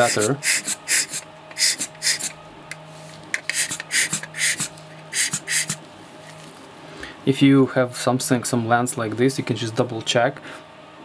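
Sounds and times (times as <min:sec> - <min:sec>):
rubber air blower puffing: 0:00.0 - 0:02.4, 0:03.0 - 0:05.9.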